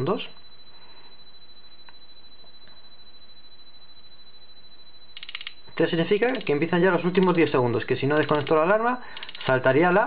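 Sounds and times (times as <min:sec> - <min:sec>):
alarm keypad buzzer tone: 0:00.0 - 0:10.0.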